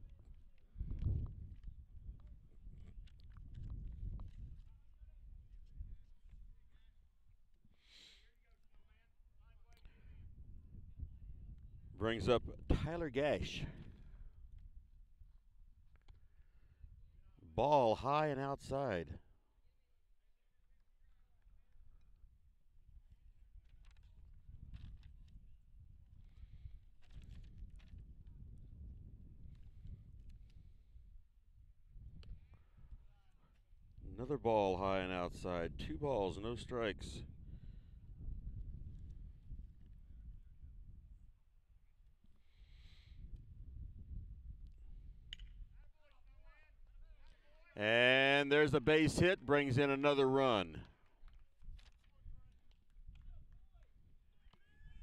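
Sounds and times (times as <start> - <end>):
distant voice calling out: 47.8 - 50.8.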